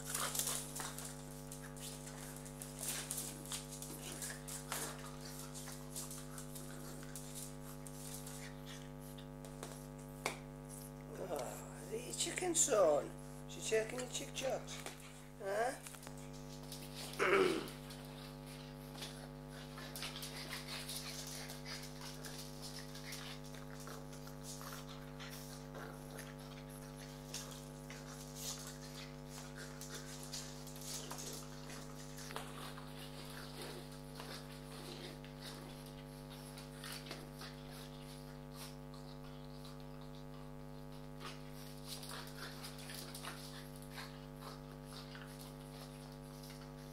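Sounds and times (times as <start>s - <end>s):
dogs snuffling and scuffling: 0.0s - 46.9s
steady hum: 0.0s - 46.9s.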